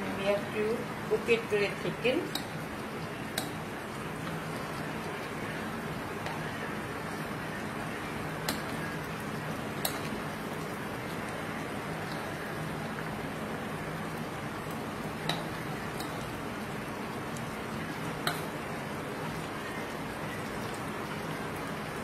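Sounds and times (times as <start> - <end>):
broth bubbling in a wok: 0.0 - 22.0.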